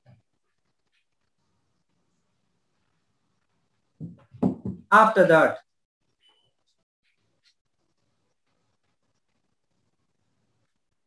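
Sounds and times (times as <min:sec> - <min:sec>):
man speaking: 0:04.9 - 0:05.6.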